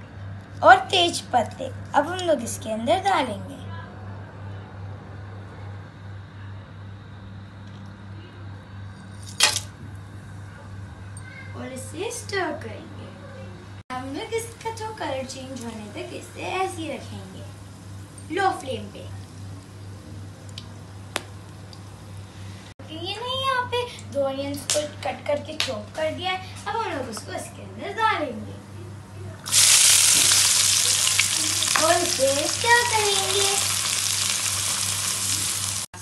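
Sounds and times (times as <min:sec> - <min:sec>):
steady low hum: 0:00.0 - 0:36.0
spices hitting hot oil: 0:09.2 - 0:09.7, 0:14.6 - 0:22.1, 0:29.4 - 0:35.9
sharp pop of frying spices: 0:21.1 - 0:21.4
spices sizzling in oil: 0:29.4 - 0:35.9.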